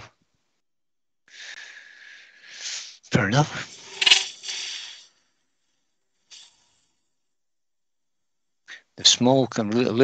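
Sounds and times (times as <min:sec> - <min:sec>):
hissing scrape of wood cutting: 0:02.4 - 0:05.4, 0:06.3 - 0:07.0.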